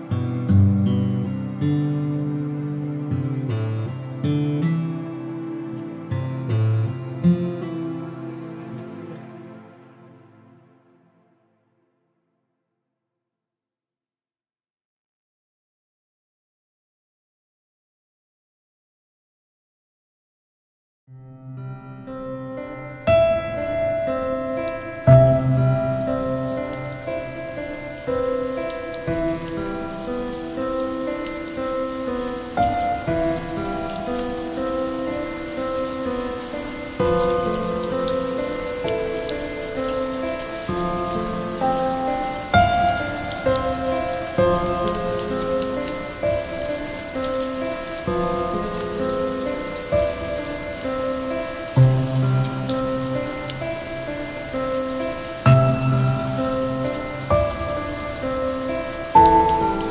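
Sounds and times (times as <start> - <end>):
slow calm piano music: 0.0 - 11.8, 21.1 - 59.9
steady rain patter: 22.2 - 59.9.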